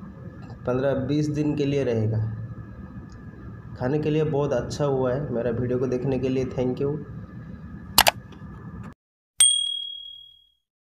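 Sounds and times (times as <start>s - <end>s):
notification bell ding: 9.4s - 10.6s.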